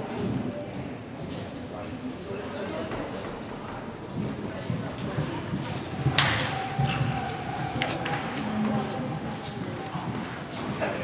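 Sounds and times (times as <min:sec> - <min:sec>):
background voices: 0:01.8 - 0:11.0.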